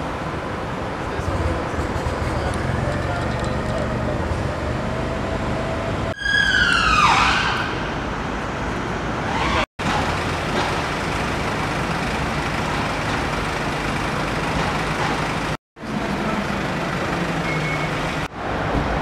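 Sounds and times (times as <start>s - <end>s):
street traffic noise: 0.0s - 19.0s
emergency vehicle siren wail: 2.8s - 7.9s.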